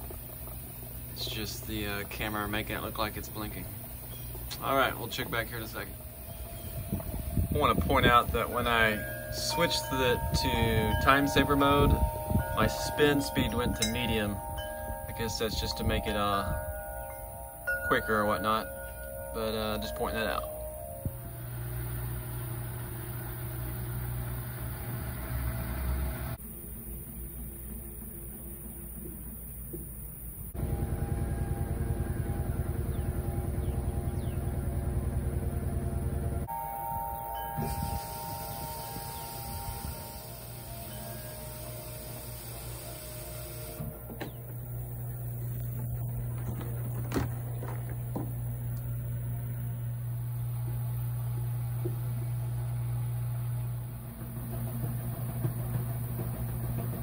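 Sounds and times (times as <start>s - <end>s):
washer dryer motor hum: 0.0s - 26.3s, 30.6s - 57.0s
brief machine whine: 30.6s - 34.2s, 36.3s - 56.9s.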